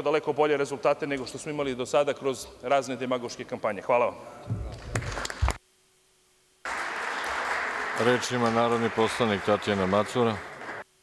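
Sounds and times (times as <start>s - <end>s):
applause in a large chamber: 4.7s - 5.6s, 6.6s - 10.9s.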